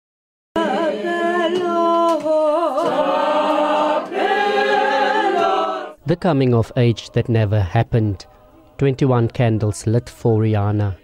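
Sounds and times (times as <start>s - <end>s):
group singing in harmony: 0.6s - 11.0s.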